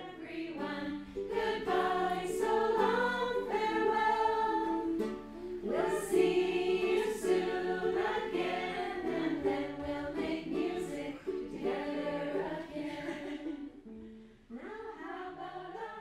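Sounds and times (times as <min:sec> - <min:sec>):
strummed ukulele: 0:00.0 - 0:15.9
group singing slow song: 0:00.0 - 0:16.0.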